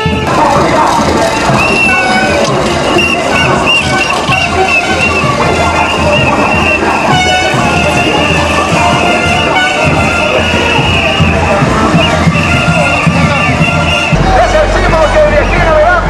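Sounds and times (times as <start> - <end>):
steady drum beat: 0.0 - 16.0
upbeat band music with horns: 0.0 - 16.0.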